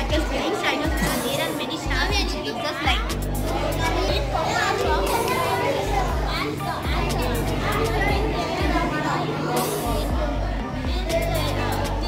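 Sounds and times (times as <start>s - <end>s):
children's voices chattering: 0.0s - 12.0s.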